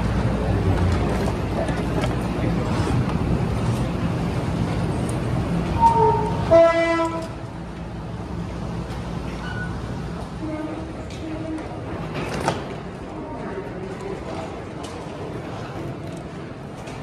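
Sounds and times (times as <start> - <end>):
train rumbling: 0.0 - 17.0
long low horn blast: 5.8 - 7.4.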